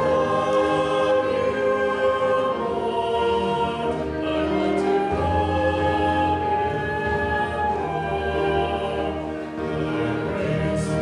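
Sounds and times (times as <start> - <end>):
flute: 0.0 - 11.0
piano: 0.0 - 11.0
voices singing held notes: 0.0 - 11.0.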